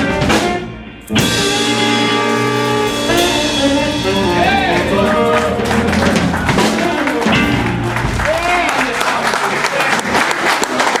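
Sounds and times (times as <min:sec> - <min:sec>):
audience applauding: 0:04.4 - 0:11.0
voices among clapping: 0:05.3 - 0:11.0.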